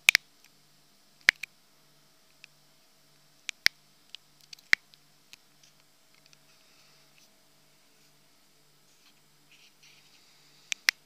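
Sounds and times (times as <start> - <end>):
faint steady hum: 0.0 - 11.0
sharp clicks: 1.2 - 1.5, 3.4 - 6.4, 10.7 - 11.0.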